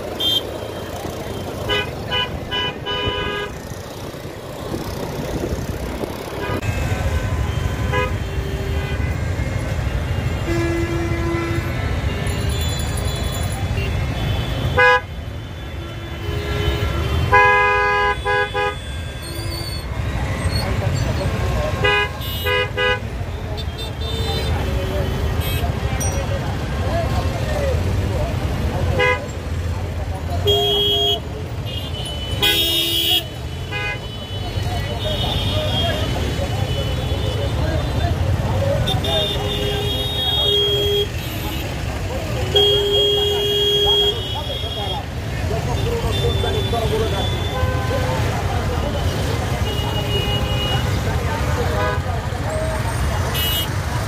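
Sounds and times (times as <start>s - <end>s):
crowd chatter: 0.0s - 54.0s
traffic engine rumble: 0.0s - 54.0s
vehicle horns honking: 0.1s - 3.8s, 6.3s - 26.2s, 28.8s - 29.4s, 30.3s - 54.0s.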